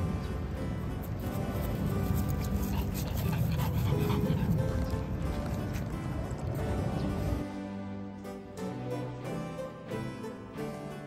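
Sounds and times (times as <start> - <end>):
background music: 0.0 - 11.0
dog panting: 1.6 - 6.4.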